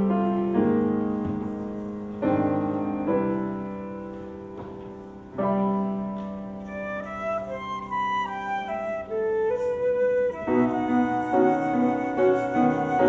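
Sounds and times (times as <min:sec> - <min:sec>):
piano chords: 0:00.0 - 0:13.0
flute playing slow melody: 0:06.6 - 0:13.0.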